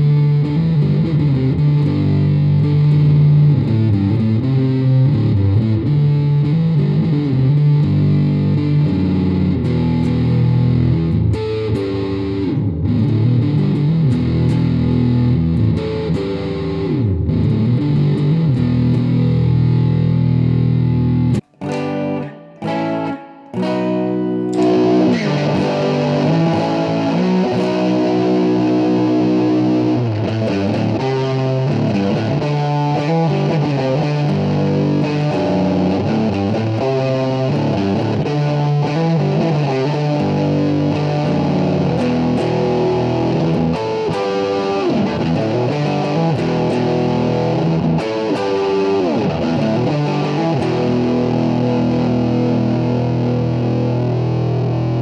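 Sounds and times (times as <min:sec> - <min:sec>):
distorted electric guitar riff: 0:00.0 - 0:55.0.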